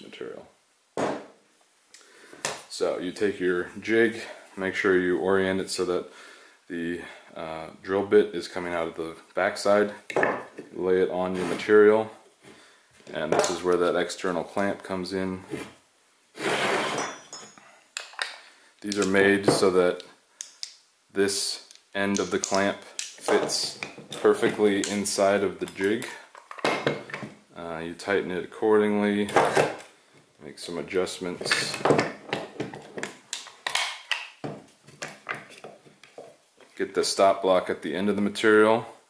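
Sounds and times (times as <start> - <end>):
wood scraping across workbench: 11.3 - 11.8, 16.4 - 17.2
faint metallic clinks: 17.0 - 17.8.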